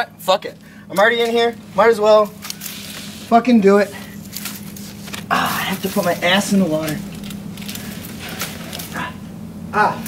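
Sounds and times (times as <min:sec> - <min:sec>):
steady low hum: 0:00.0 - 0:10.0
person shuffling over rocks: 0:04.0 - 0:09.0.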